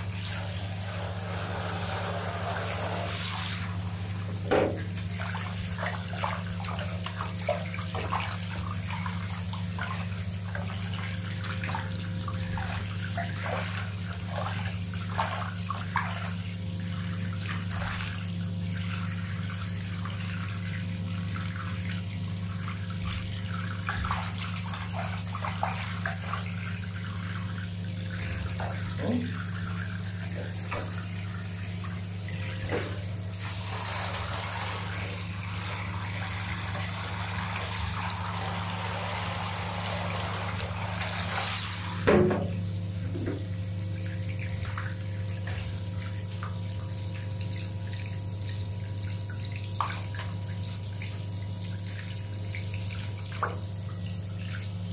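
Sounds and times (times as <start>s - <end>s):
shower head spraying water: 0.0s - 5.2s, 32.6s - 43.4s
bath water splashing: 0.0s - 54.9s
loud knock: 4.4s - 4.8s.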